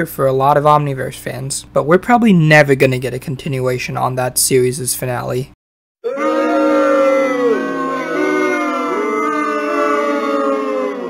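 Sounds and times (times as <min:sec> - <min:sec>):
cartoon voices wailing: 0:06.0 - 0:11.0.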